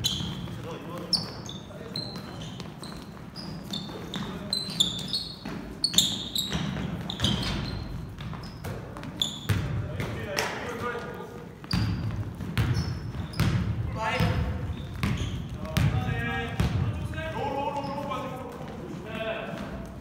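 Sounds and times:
basketball bouncing on gym floor: 0.0s - 18.8s.

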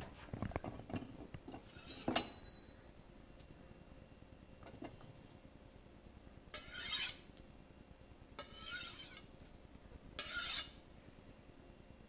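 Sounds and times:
metal clink ringing: 2.1s - 3.0s.

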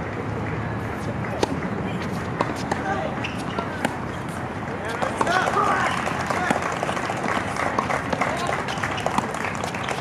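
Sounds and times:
racket hitting ball: 1.3s - 10.0s.

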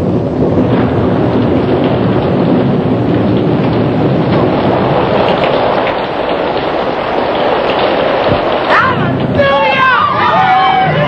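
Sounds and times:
heavy rain rushing: 0.0s - 11.0s
low rumbling thunder: 0.0s - 11.0s.

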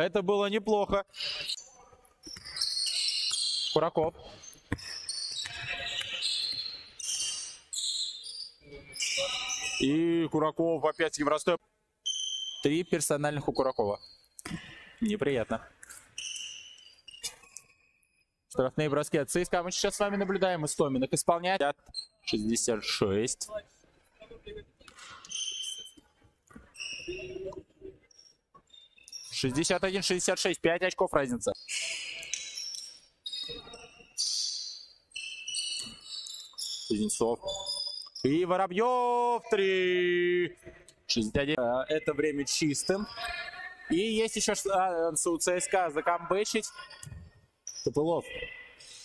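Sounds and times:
sneaker squeaks: 1.1s - 9.9s, 12.0s - 12.8s, 15.8s - 17.9s, 21.8s - 22.3s, 24.8s - 29.9s, 31.5s - 38.4s, 46.7s - 49.0s.

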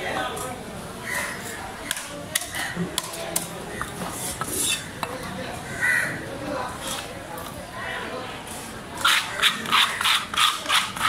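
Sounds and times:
crow cawing: 5.6s - 6.2s.

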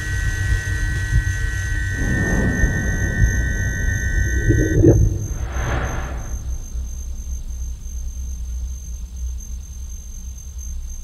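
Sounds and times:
pulsing low rumble: 0.2s - 8.0s
noisy mid-range texture: 2.0s - 7.5s.

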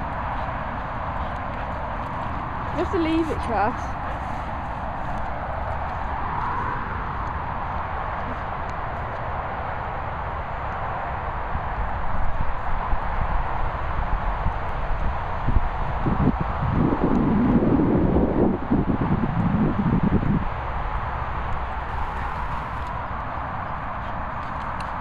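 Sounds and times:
wind rushing: 11.6s - 20.6s.

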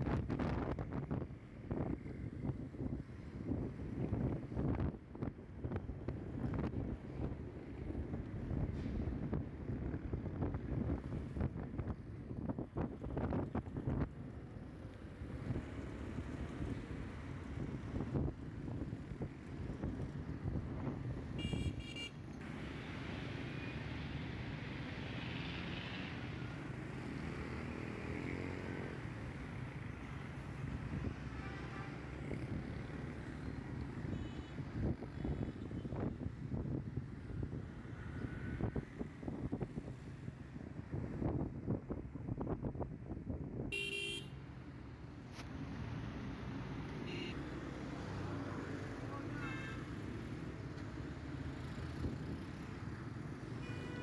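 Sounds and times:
engine and road rumble: 0.0s - 54.0s
vehicle horns honking: 21.4s - 22.2s, 43.7s - 44.3s, 47.0s - 47.4s, 53.6s - 54.0s.

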